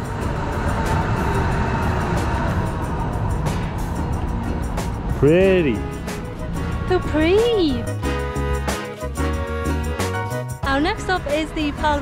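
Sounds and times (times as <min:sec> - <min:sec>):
tram wheels rumbling on rails: 0:00.0 - 0:08.2, 0:10.6 - 0:12.0
background music: 0:00.0 - 0:12.0.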